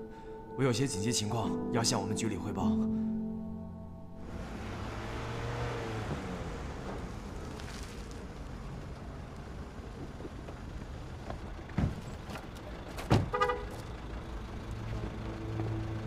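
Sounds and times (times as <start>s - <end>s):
car engine and road noise: 4.1s - 16.0s.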